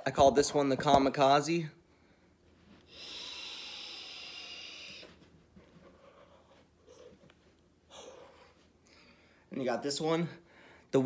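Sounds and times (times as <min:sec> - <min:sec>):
vape draw hissing: 0:02.9 - 0:05.1
person exhaling vapour: 0:02.9 - 0:05.2.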